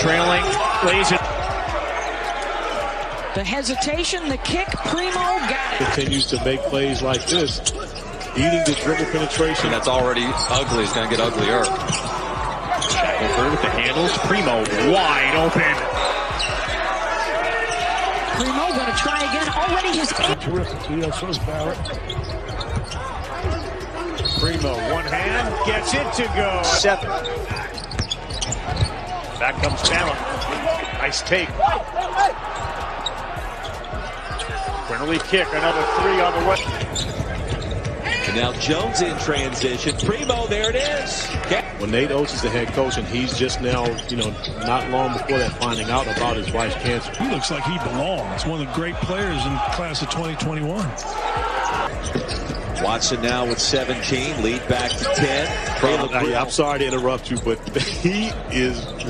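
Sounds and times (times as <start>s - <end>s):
shoe squeaks: 4.6s - 41.9s, 42.6s - 47.9s, 51.2s - 59.0s.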